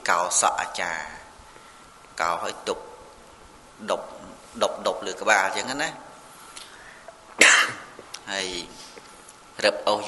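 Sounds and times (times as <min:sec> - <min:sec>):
man coughing: 0:07.4 - 0:07.9.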